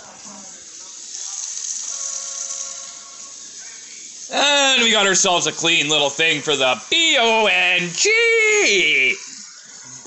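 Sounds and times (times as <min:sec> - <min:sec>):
steady hiss: 0:00.0 - 0:09.4.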